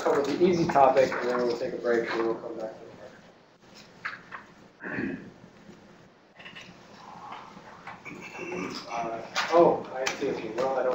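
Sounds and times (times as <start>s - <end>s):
murmuring voice: 8.0s - 9.1s.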